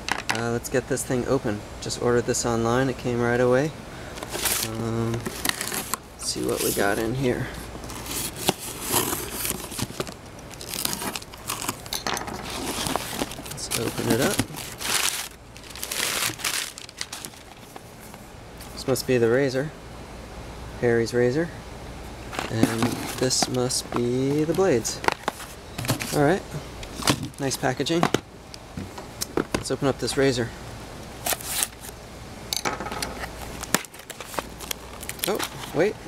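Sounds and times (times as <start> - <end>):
packing paper crinkling: 4.2 - 18.8, 22.3 - 26.3, 31.2 - 31.9, 33.4 - 35.9
cardboard box scraping open: 4.3 - 7.1, 7.8 - 11.8, 12.4 - 17.8, 22.3 - 23.4.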